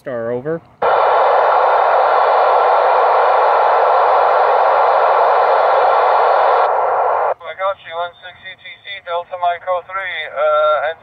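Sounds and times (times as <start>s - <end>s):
radio static hiss: 0.8s - 11.0s.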